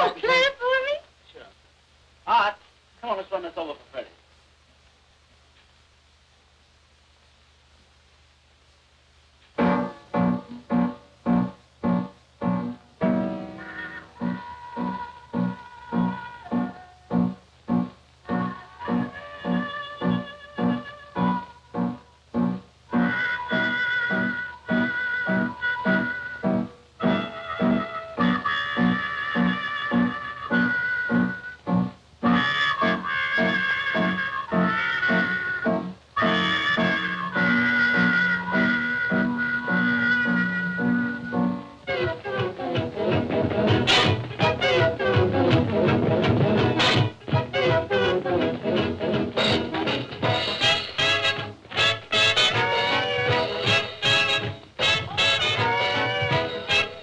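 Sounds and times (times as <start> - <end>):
upright piano chords: 9.6 - 18.4
trumpet slow melody: 9.6 - 45.9, 46.8 - 57.0.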